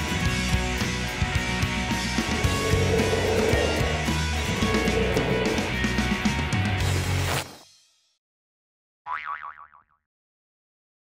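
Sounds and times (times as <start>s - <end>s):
cartoon boing spring: 9.1s - 10.1s.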